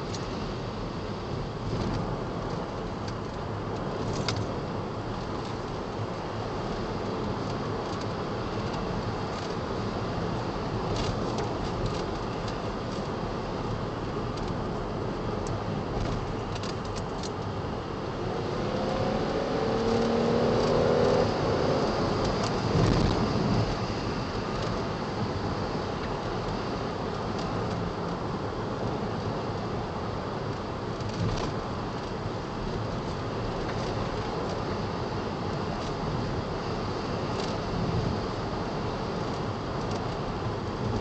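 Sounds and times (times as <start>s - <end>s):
road and tyre noise: 0.0s - 41.0s
car engine accelerating: 18.1s - 23.8s.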